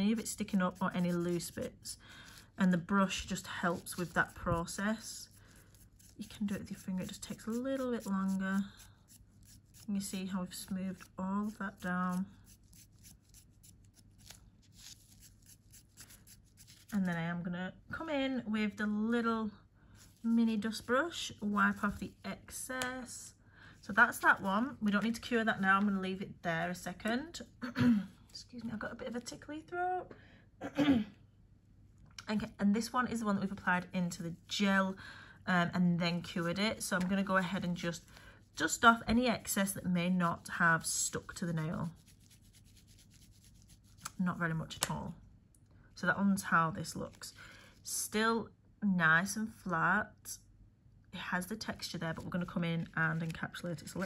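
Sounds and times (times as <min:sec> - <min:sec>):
brush rubbing over nail: 0:00.0 - 0:17.2, 0:20.0 - 0:22.2, 0:36.2 - 0:44.2
gloved hands rustling and scratching: 0:00.0 - 0:17.4, 0:20.0 - 0:22.2, 0:36.2 - 0:44.2, 0:51.6 - 0:54.0.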